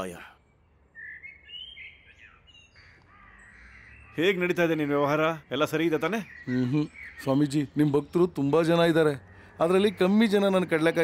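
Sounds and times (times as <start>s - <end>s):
birds chirping and whistling: 0.0s - 11.0s.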